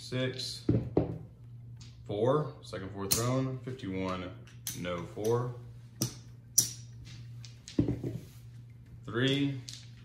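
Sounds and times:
dice tumbling on felt table: 7.0s - 8.3s.

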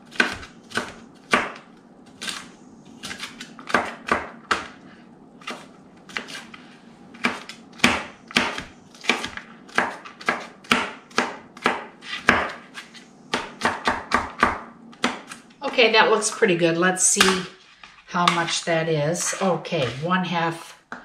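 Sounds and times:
knife chopping on plastic board: 0.1s - 1.6s, 7.2s - 15.4s.

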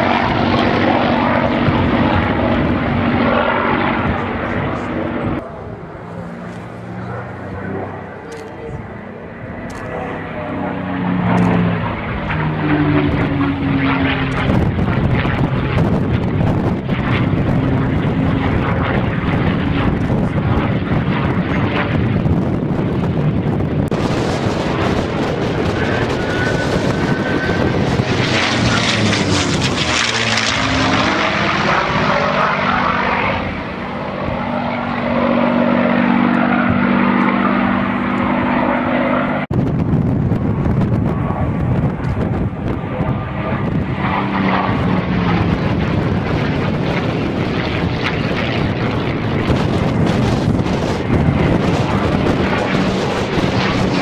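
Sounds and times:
propeller plane engine passing overhead: 0.0s - 54.0s.

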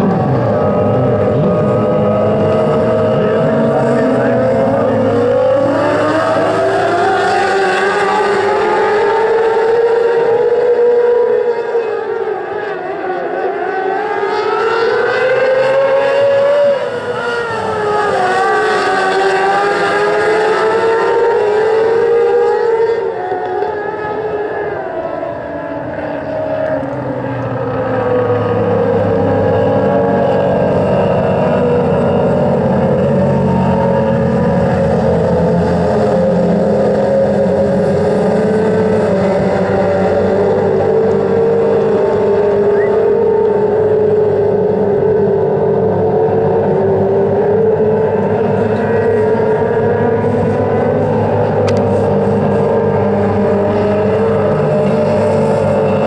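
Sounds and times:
deeper engine note: 0.0s - 7.0s
race car engines: 0.0s - 56.0s.

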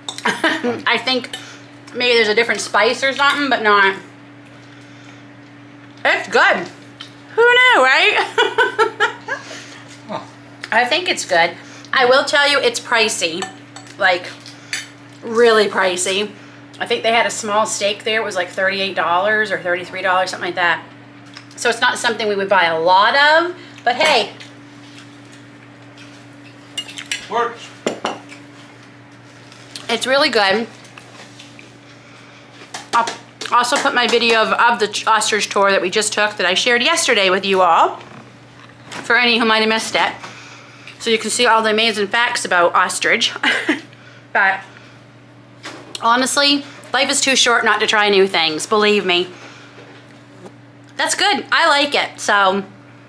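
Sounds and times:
steady low two-tone hum: 0.0s - 53.0s.

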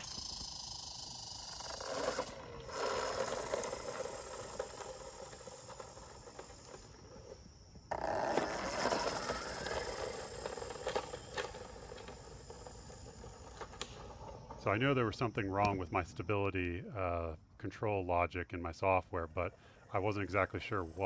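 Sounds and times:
electric toy car motor whine: 0.0s - 14.7s
tyre noise on asphalt: 0.0s - 14.7s.

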